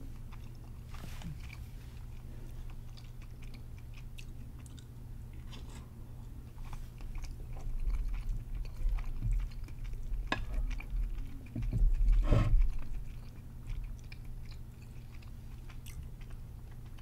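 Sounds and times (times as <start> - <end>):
wet chewing mouth sounds: 0.0 - 5.7, 6.4 - 17.0.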